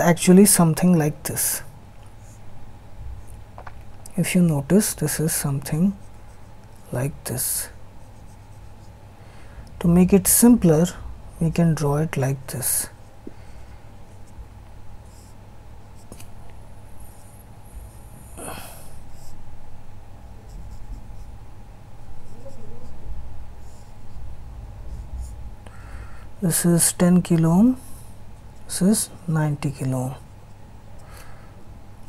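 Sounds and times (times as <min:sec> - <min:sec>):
man speaking: 0:00.0 - 0:01.7, 0:04.1 - 0:06.0, 0:06.9 - 0:07.8, 0:09.8 - 0:13.0, 0:26.4 - 0:27.8, 0:28.7 - 0:30.2
marker drawing on whiteboard: 0:04.3 - 0:09.0, 0:15.0 - 0:16.3, 0:20.2 - 0:21.4, 0:24.9 - 0:25.4
marker pen scratchy strokes: 0:20.3 - 0:21.4, 0:24.9 - 0:25.4
steady low rumble: 0:23.0 - 0:32.0.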